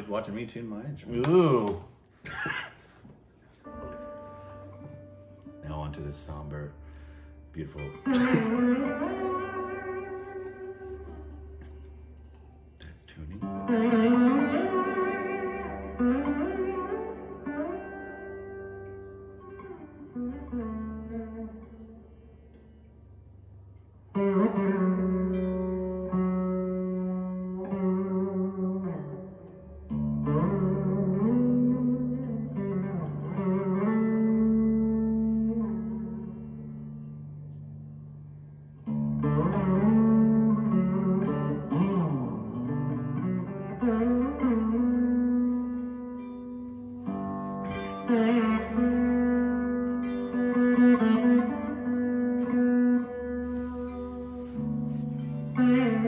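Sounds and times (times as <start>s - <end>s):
veena plucked: 3.5s - 56.0s.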